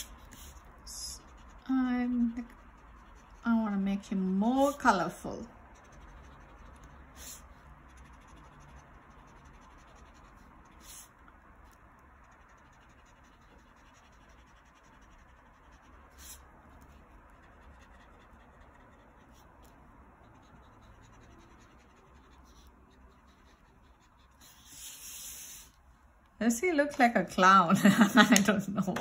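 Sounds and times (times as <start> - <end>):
marker scratching on paper: 0.0 - 25.8.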